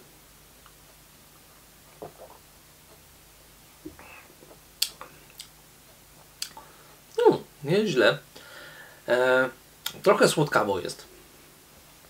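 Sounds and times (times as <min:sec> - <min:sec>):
mouth clicks and lip smacks: 0:03.8 - 0:05.6, 0:06.2 - 0:06.7.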